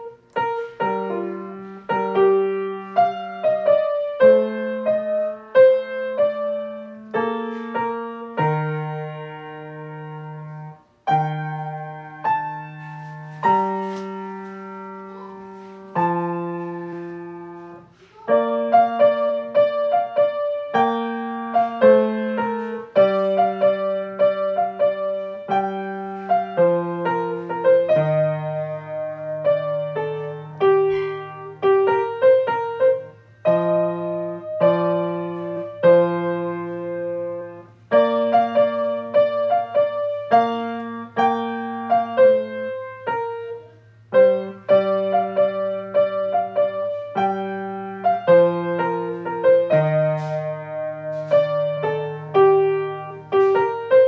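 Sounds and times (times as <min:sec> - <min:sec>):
solo grand piano: 0:00.0 - 0:54.0.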